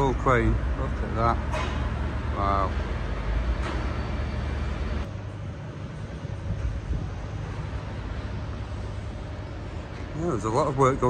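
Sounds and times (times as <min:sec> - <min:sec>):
heavy deep rumble: 0:00.0 - 0:11.0
street traffic rumble: 0:00.0 - 0:11.0.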